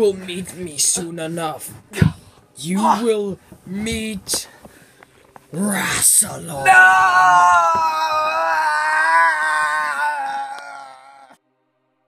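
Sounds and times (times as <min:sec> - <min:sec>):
boy screaming no: 0:06.6 - 0:11.4.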